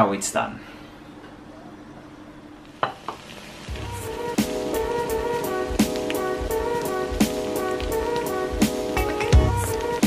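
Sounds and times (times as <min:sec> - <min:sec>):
background music: 0:03.7 - 0:10.0.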